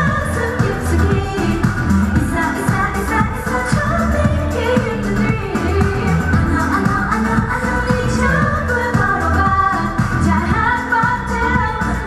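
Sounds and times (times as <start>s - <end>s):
backing track with steady beat: 0.0s - 12.0s
woman singing pop song: 0.0s - 12.0s.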